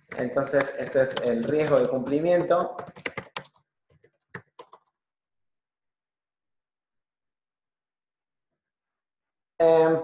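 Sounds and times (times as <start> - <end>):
typing on computer keyboard: 0.0 - 5.0.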